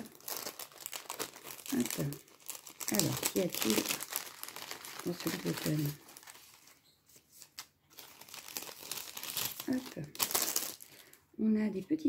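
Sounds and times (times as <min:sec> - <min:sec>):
paper packaging rustling: 0:00.0 - 0:11.2.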